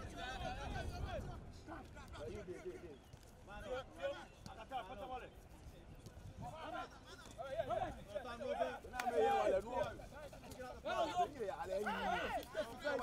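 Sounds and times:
players shouting: 0:08.4 - 0:09.9, 0:10.5 - 0:13.0.

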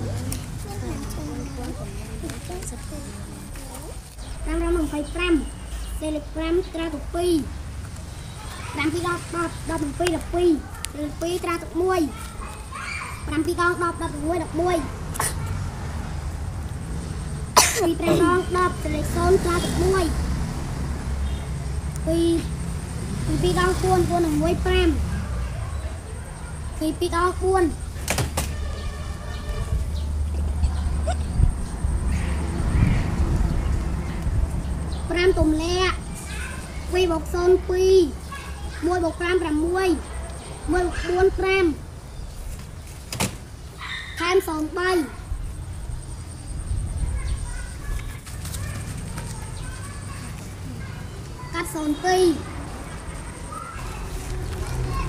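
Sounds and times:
person coughing: 0:17.6 - 0:18.4.

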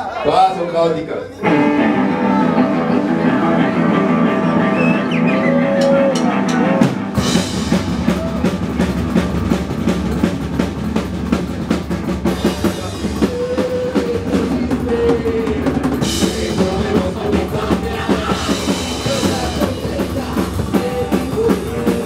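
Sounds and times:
electric guitar: 0:01.4 - 0:22.0
upright bass: 0:01.4 - 0:22.0
drum kit: 0:03.5 - 0:22.0.

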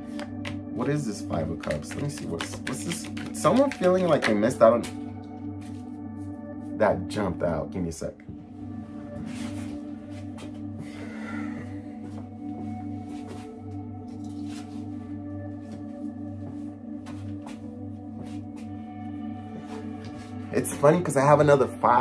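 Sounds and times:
ambient droning music: 0:00.0 - 0:22.0.

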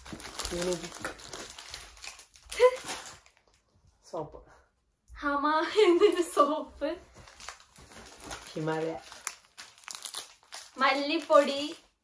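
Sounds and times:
plastic packet crinkling: 0:00.0 - 0:03.6, 0:07.2 - 0:12.0.

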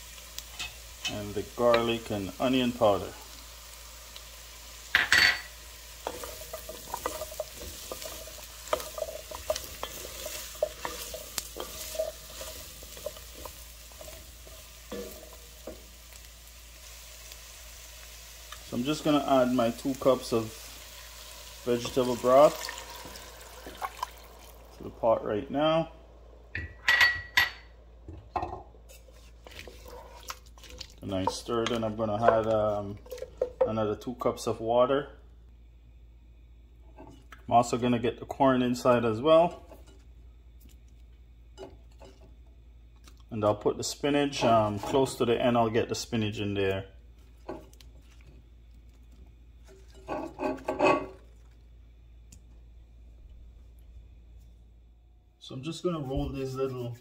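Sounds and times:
steady low hum: 0:00.5 - 0:57.0
stirring vegetables in broth: 0:05.6 - 0:24.6, 0:28.8 - 0:33.8.

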